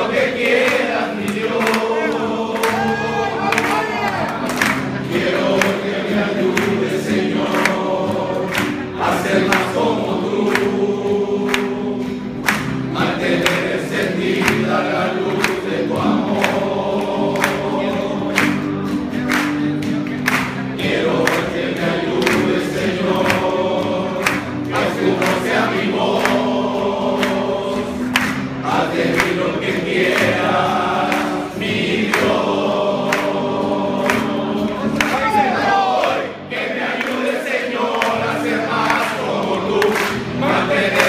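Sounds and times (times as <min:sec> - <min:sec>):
men singing worship song: 0:00.0 - 0:18.9, 0:20.8 - 0:41.0.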